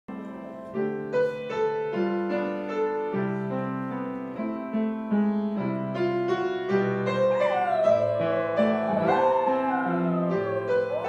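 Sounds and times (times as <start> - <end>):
grand piano notes: 0.1 - 11.0
dog howling: 7.2 - 11.0.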